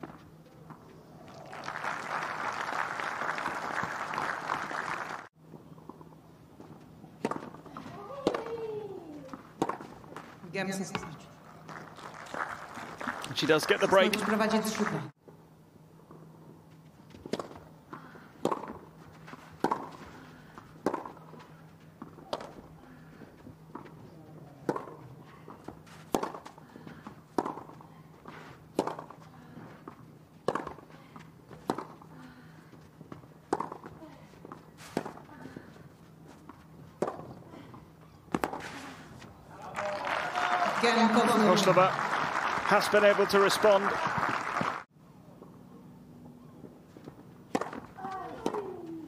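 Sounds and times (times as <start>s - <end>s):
tennis ball hit by racquets: 7.2s - 8.6s, 9.3s - 10.2s, 17.2s - 21.4s, 22.0s - 22.7s, 23.7s - 32.1s, 33.1s - 35.8s, 36.4s - 38.9s, 47.0s - 49.0s
crowd reacting: 39.5s - 44.8s.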